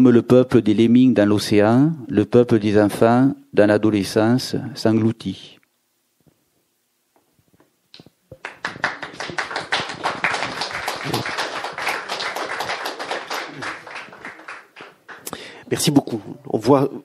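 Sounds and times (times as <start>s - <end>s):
audience applauding: 8.3s - 15.4s.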